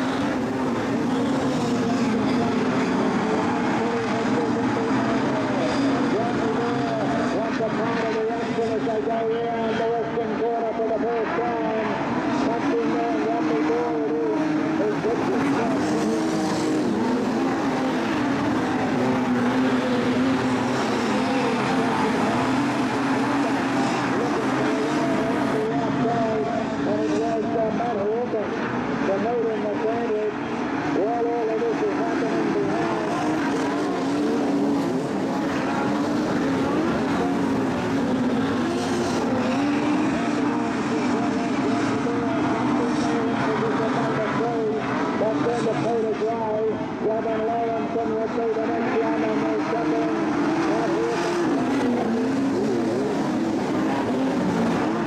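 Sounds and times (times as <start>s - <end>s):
racing car engines: 0.0s - 55.0s.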